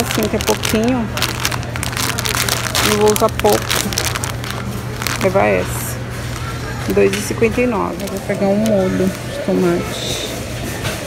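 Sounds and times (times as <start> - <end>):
plastic packet crinkling: 0.0 - 9.4.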